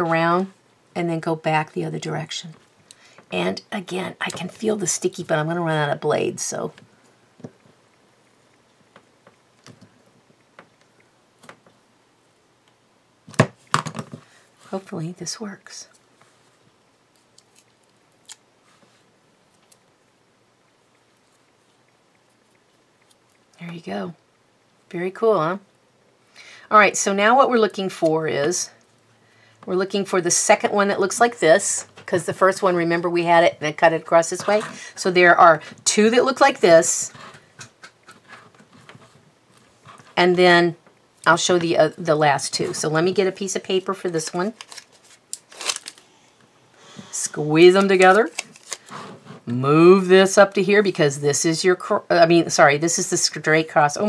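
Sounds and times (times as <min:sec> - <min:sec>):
paper rustling: 0:44.3 - 0:46.0, 0:47.7 - 0:49.4.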